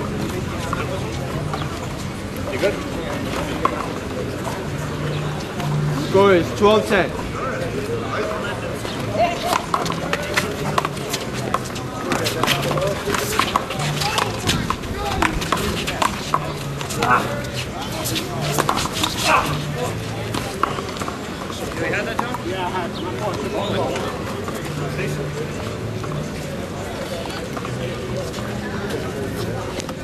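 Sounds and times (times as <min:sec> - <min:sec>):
crowd voices: 0:00.0 - 0:30.0
shoe scuffs: 0:10.1 - 0:20.0.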